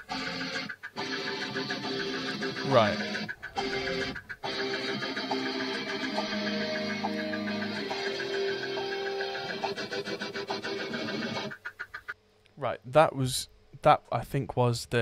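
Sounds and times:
electric guitar chords: 0:00.0 - 0:11.5.

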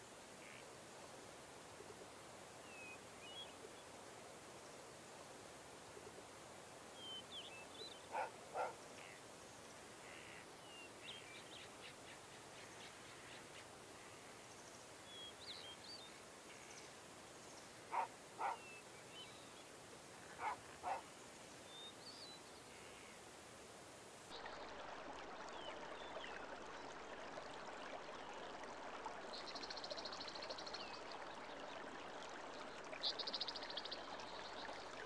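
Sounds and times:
small birds chirping: 0:07.0 - 0:09.2, 0:17.5 - 0:19.6, 0:20.3 - 0:23.2.

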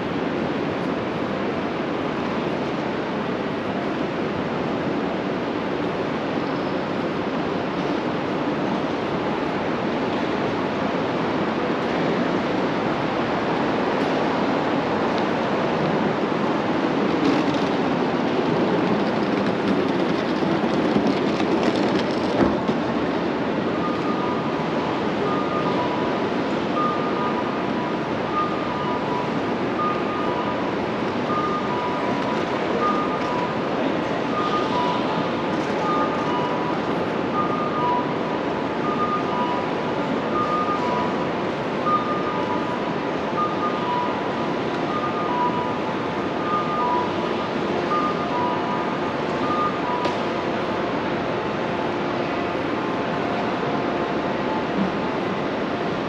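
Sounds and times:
road traffic roar: 0:00.0 - 0:56.0.

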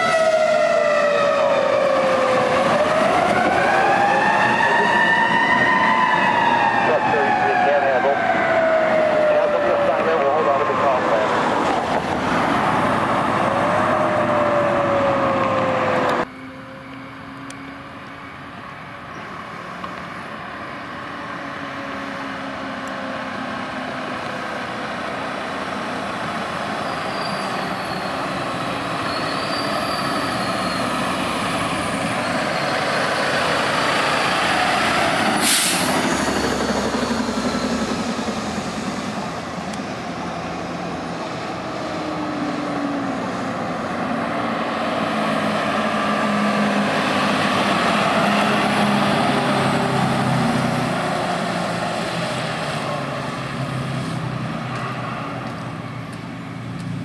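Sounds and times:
fire engine diesel passing: 0:00.0 - 0:57.0
second vehicle engine: 0:02.5 - 0:57.0
air brakes hiss: 0:35.4 - 0:36.1.

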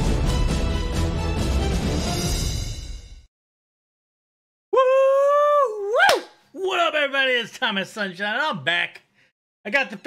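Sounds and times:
man howling: 0:04.7 - 0:06.2.

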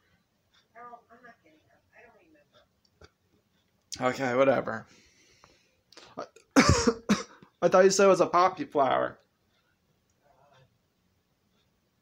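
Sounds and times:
person coughing: 0:06.6 - 0:07.4.

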